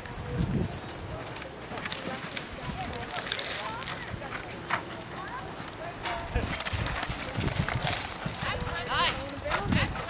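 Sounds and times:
horse hoofbeats on dirt: 0.0 - 10.0
people's voices: 0.0 - 10.0.

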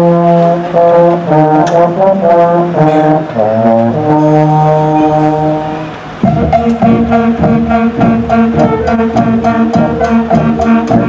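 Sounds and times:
wind band playing: 0.0 - 11.0.

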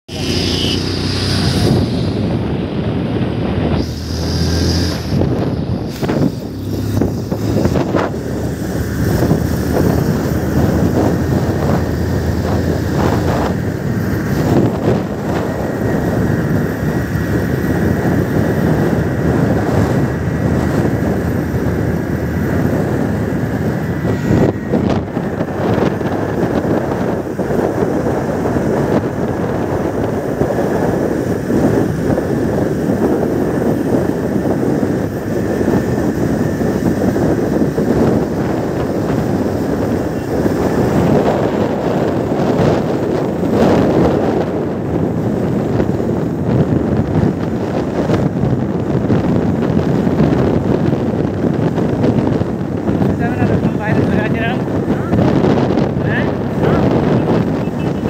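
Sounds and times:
road roar: 0.0 - 58.0
motorcycle engine running: 0.1 - 58.0
wind rushing over microphone: 0.1 - 58.0.

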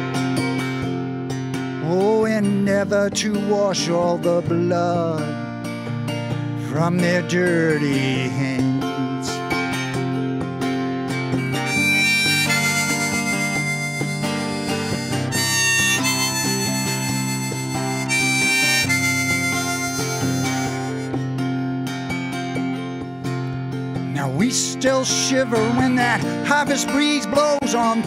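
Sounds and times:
acoustic guitar accompaniment: 0.0 - 28.0
harmonica solo: 11.4 - 21.7.

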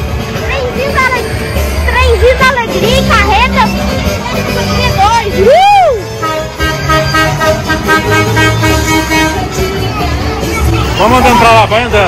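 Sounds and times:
truck musical horn playing tune: 6.0 - 10.0.

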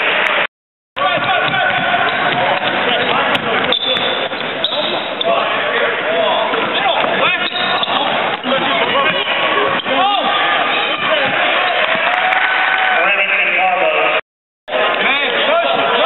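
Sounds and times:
basketball bouncing on hardwood: 1.0 - 4.6
voices of players and spectators: 1.0 - 16.0.

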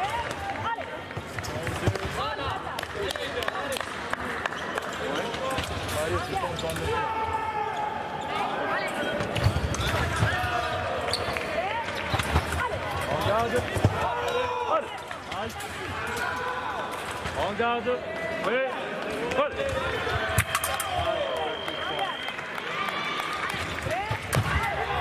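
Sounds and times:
voices in a hall: 0.0 - 25.0.

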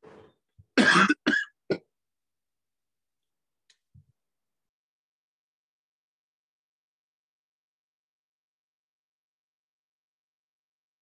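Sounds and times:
person coughing: 0.8 - 1.9.

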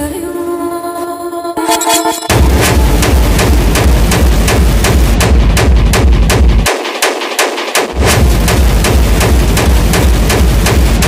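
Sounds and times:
sharp high percussion hits: 1.6 - 11.0
hard techno kick drum: 2.3 - 11.0.

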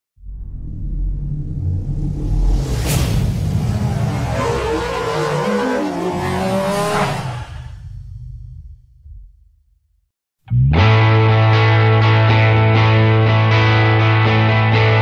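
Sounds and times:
deep rumble: 0.2 - 4.9, 7.4 - 10.1
sharp hit: 0.3 - 4.2.

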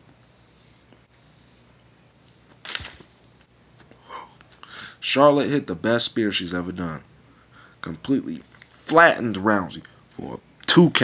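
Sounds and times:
puff of breath: 4.0 - 5.0.

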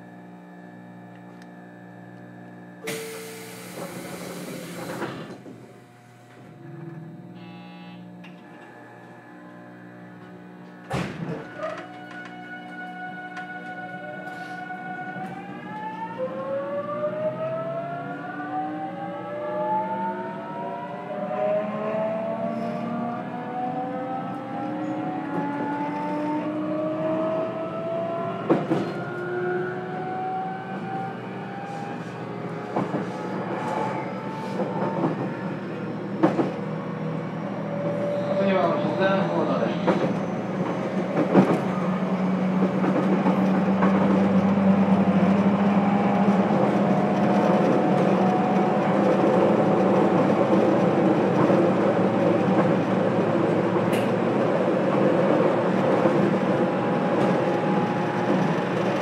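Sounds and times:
electric train motors whining: 0.2 - 21.4.

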